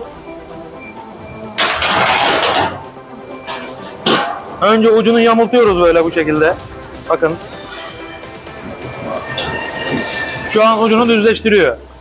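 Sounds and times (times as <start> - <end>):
faint background music: 0.0 - 12.0
sheet metal rattling and sliding: 1.6 - 5.1, 7.6 - 10.7.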